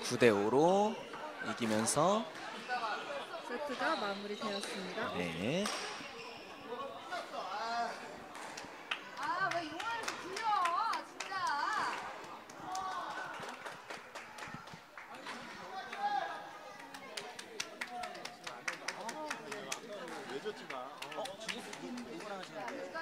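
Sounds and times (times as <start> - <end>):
people talking indistinctly: 0.0 - 23.0.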